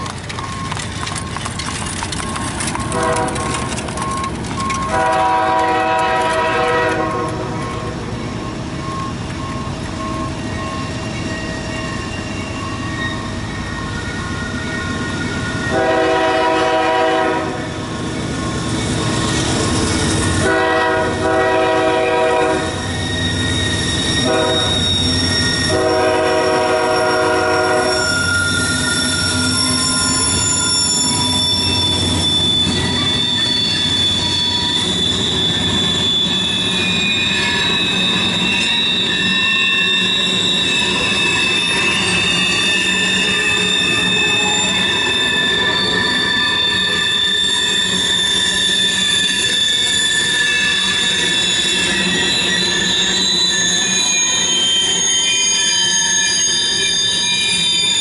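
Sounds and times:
train rumbling past: 0:00.0 - 0:58.0
train wheel squeal: 0:00.0 - 0:58.0
locomotive horn blasts: 0:02.9 - 0:03.6, 0:04.8 - 0:07.6, 0:15.7 - 0:17.7, 0:20.4 - 0:22.8, 0:24.2 - 0:24.8, 0:25.6 - 0:28.2.

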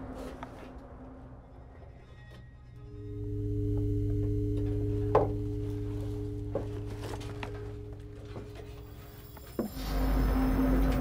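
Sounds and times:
suspense music drone: 0:00.4 - 0:11.0.

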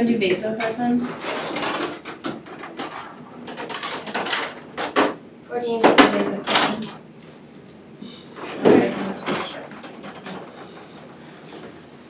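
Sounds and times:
rustles of medical supplies: 0:00.9 - 0:05.2, 0:06.0 - 0:12.0
low voices talking: 0:05.4 - 0:11.8.

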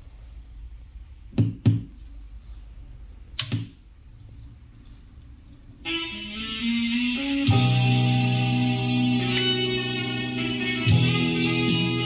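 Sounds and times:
guitar music: 0:05.9 - 0:12.0.

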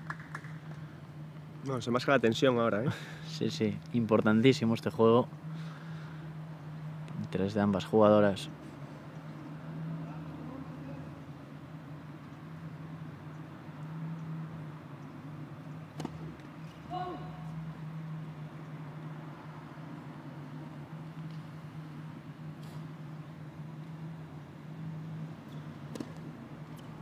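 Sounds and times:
steady low hum: 0:00.0 - 0:27.0.

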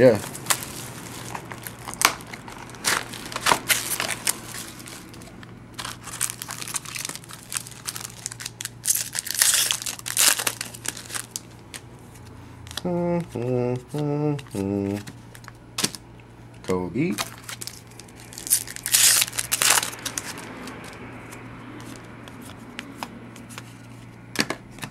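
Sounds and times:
plastic wrap crinkling: 0:00.0 - 0:11.8, 0:17.1 - 0:21.0.

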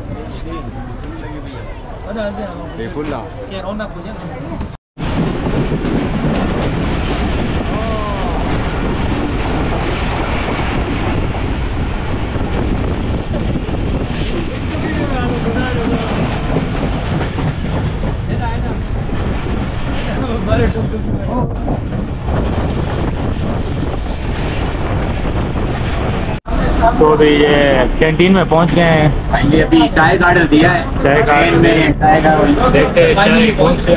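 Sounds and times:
train wheels rumbling on track: 0:00.0 - 0:33.9.

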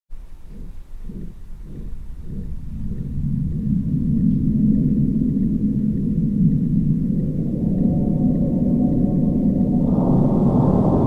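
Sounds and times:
low rumbling drone: 0:00.2 - 0:11.0.

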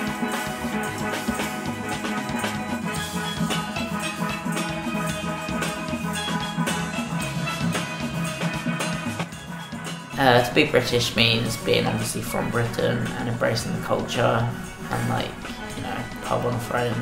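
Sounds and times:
steady drum beat: 0:00.0 - 0:17.0
steelpans playing a tune: 0:00.0 - 0:17.0.

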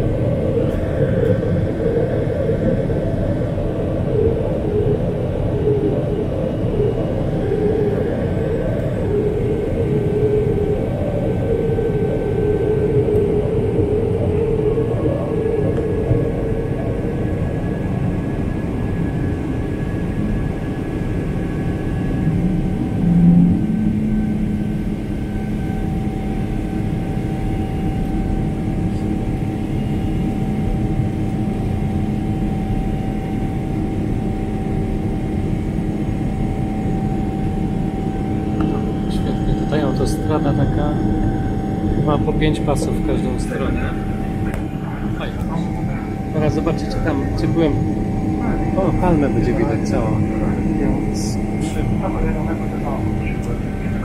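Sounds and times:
airplane engine and airflow roar: 0:00.0 - 0:54.0
low cabin hum: 0:00.0 - 0:54.0.

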